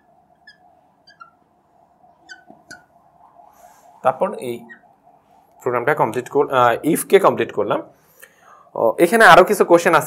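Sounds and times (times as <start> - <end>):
marker squeaking on glass: 0.0 - 3.8, 4.5 - 5.2
faint room hum: 0.0 - 10.0.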